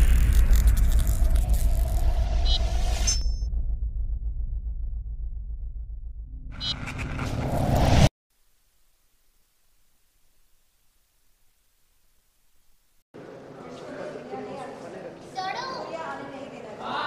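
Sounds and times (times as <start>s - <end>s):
deep rumble: 0.0s - 8.1s
rising whoosh: 0.0s - 8.1s.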